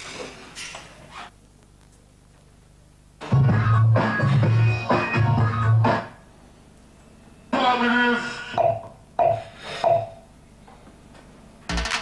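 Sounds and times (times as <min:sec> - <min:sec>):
electronic dance beat: 0:03.2 - 0:06.2.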